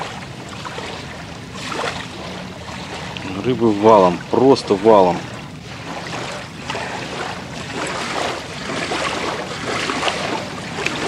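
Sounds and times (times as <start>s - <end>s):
water lapping at shoreline: 0.0s - 11.0s
wind: 0.0s - 11.0s.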